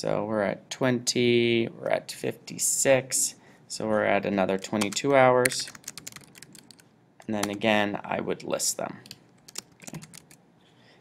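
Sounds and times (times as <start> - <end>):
computer keyboard typing: 4.6 - 6.8, 9.0 - 10.4.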